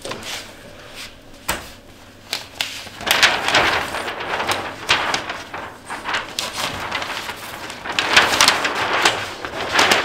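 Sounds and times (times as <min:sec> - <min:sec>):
paper sheets rustling: 0:00.0 - 0:10.0.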